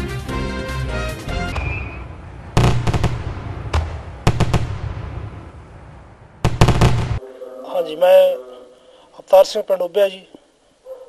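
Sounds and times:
fireworks bangs: 1.5 - 7.2.

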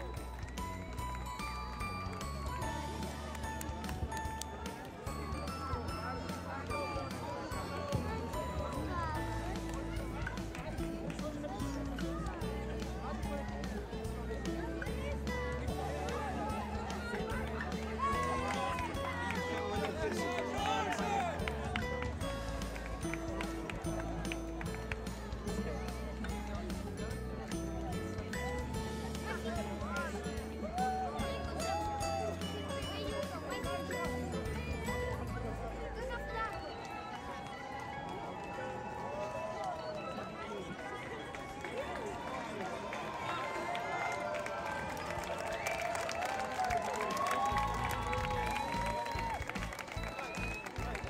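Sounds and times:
crowd chatter and calls: 0.0 - 51.0
crowd footsteps on cobblestones: 0.0 - 51.0
runners' footsteps: 35.3 - 51.0.

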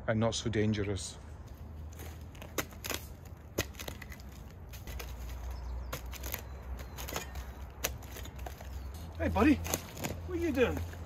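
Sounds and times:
hand tool chipping wood: 2.0 - 11.0.

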